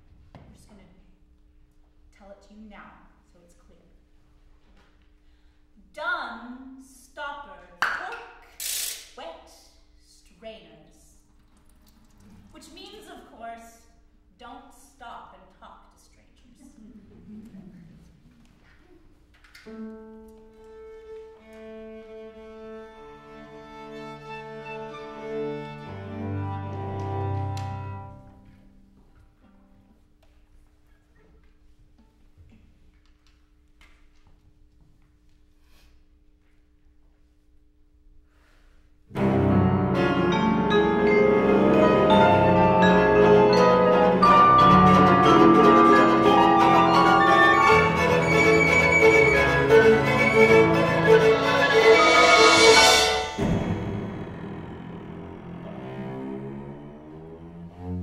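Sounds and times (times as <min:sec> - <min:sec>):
woman speaking: 0:09.2 - 0:11.2, 0:12.4 - 0:17.0.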